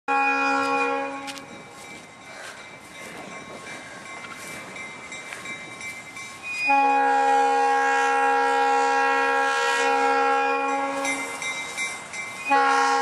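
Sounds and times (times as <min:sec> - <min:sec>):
locomotive air horn chord: 0:00.1 - 0:01.5, 0:06.6 - 0:11.4, 0:12.4 - 0:13.0
train running noise: 0:00.1 - 0:13.0.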